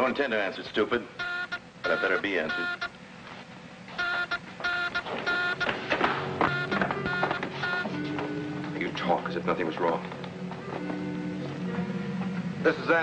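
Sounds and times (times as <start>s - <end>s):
buzzing electronic beeps: 1.2s - 3.0s, 4.0s - 8.8s.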